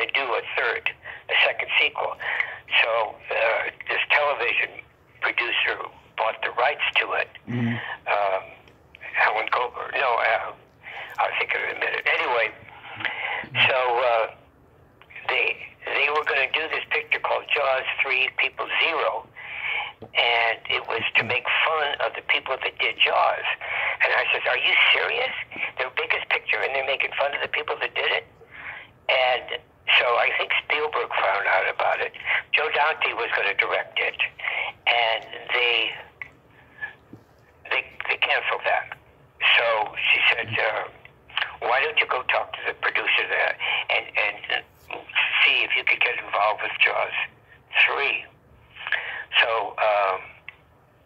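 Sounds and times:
person talking over phone line: 0.0 - 14.4, 15.0 - 37.0, 37.6 - 50.4.

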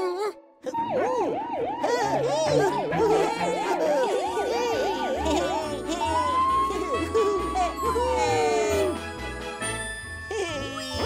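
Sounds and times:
cartoon police siren: 0.3 - 9.1.

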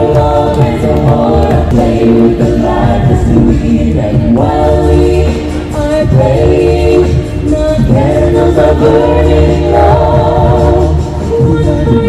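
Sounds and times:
a cappella group singing in harmony: 0.0 - 12.0
sung bass line: 0.0 - 12.0.

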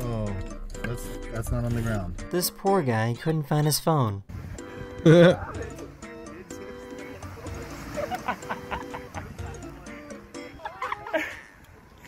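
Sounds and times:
background music sustained notes: 0.0 - 3.4, 4.3 - 12.0.

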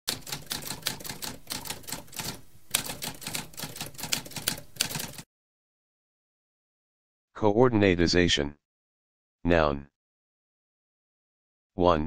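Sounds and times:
typewriter keystroke clicks: 0.1 - 5.2.

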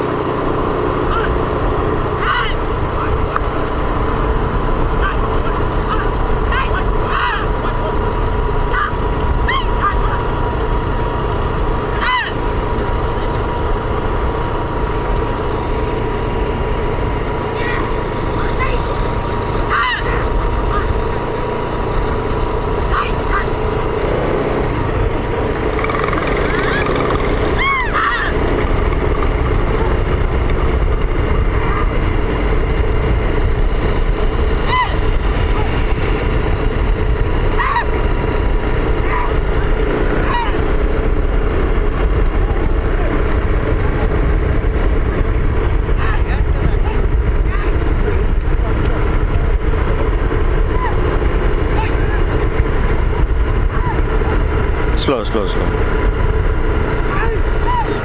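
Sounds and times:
vehicle engine rumble: 0.0 - 58.0
rising-and-falling cries: 1.0 - 13.9, 16.8 - 24.1, 25.0 - 30.0, 34.4 - 36.4, 37.4 - 40.9, 50.5 - 52.3, 57.1 - 58.0
wind on microphone: 26.9 - 54.9.

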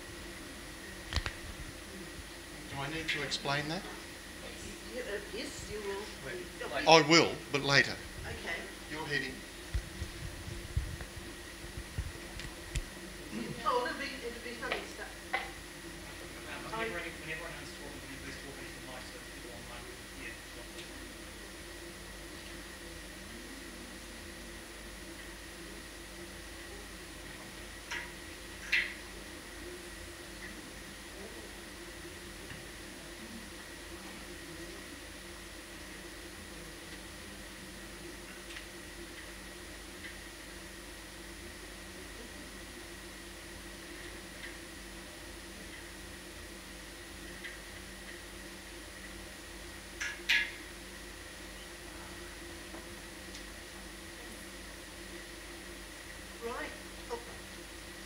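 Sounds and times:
faint steady hum: 0.0 - 58.0.

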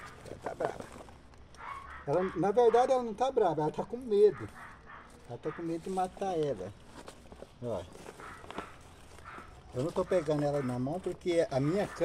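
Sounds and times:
faint clicks and rustles: 0.0 - 12.0.

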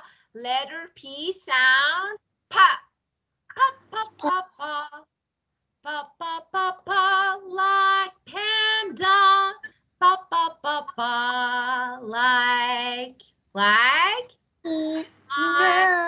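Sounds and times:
woman singing: 3.5 - 5.0, 5.9 - 14.3, 15.3 - 16.0.

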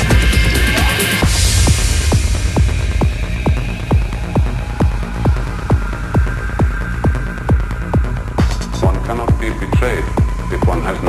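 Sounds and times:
electronic kick drum beat: 0.0 - 11.0
low bass hum: 0.0 - 11.0.

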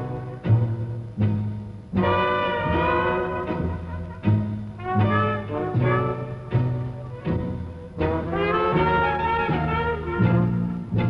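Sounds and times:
trumpet: 0.0 - 0.9, 2.0 - 11.0
jazz band playing: 0.0 - 11.0
plucked double bass: 0.0 - 11.0.

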